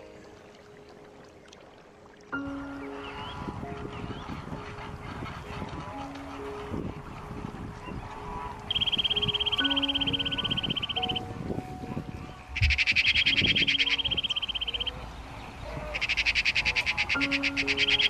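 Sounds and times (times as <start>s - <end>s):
soft background music: 0.0s - 18.0s
high-pitched trilling calls: 8.7s - 11.4s, 12.3s - 15.1s, 15.7s - 18.0s.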